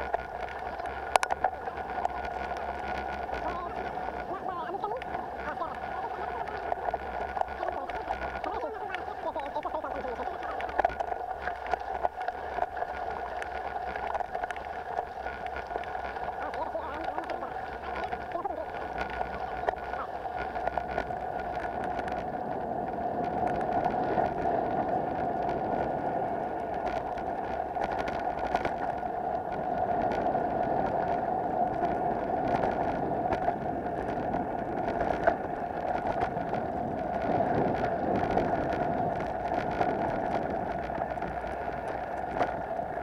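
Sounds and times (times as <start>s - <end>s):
clicks and rattles from bumps: 0.0s - 24.5s, 26.5s - 43.0s
bicycle tyres rolling on dirt: 0.0s - 43.0s.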